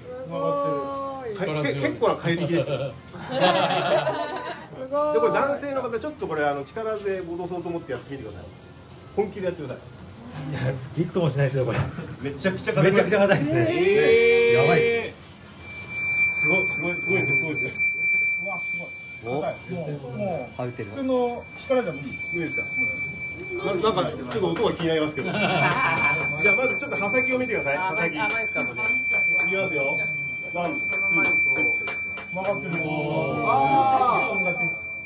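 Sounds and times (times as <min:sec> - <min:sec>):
quiet voices talking: 0:04.5 - 0:35.0
high-pitched whine: 0:12.6 - 0:35.0
steady high-pitched tone: 0:13.0 - 0:35.0.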